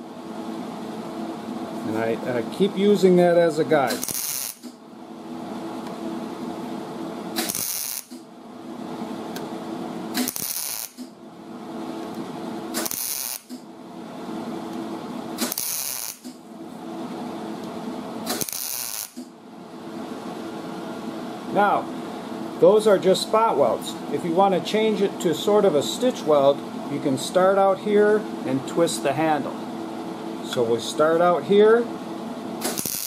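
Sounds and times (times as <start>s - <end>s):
steady low hum: 0.0s - 33.0s
welder arc crackle: 3.8s - 4.8s, 7.4s - 8.2s, 10.1s - 11.1s, 12.7s - 13.6s, 15.4s - 16.4s, 18.3s - 19.3s, 32.6s - 33.0s.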